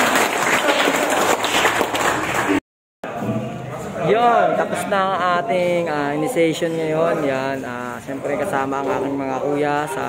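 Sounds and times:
crowd applauding: 0.0 - 2.6.

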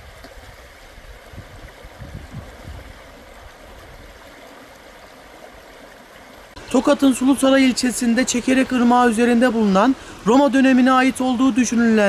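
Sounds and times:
river water rippling over stones: 0.0 - 12.0.

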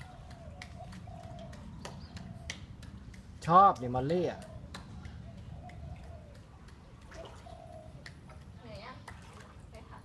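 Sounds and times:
water splashing: 0.0 - 10.0.

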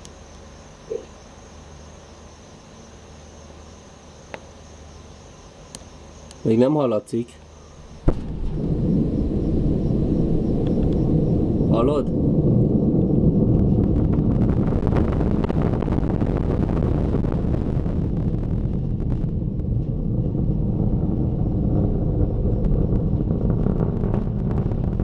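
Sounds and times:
distant rocket launch rumble: 6.4 - 25.0.

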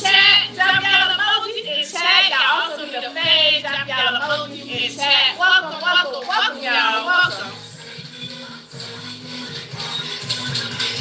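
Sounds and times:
instrumental music with low notes: 0.0 - 11.0.

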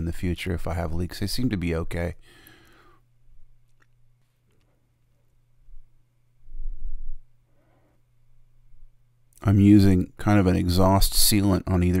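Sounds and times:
low electrical hum: 0.0 - 12.0.

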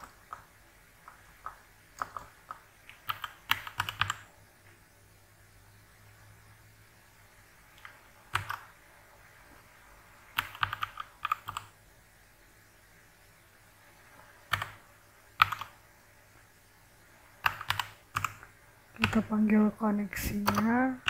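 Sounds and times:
computer keyboard typing: 0.0 - 4.3, 7.8 - 8.8, 10.3 - 11.8, 14.5 - 14.8, 15.4 - 15.8, 17.4 - 19.4, 20.2 - 21.0.

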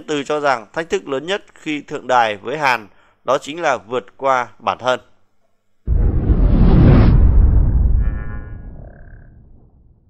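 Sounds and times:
deep boom: 5.9 - 10.0.

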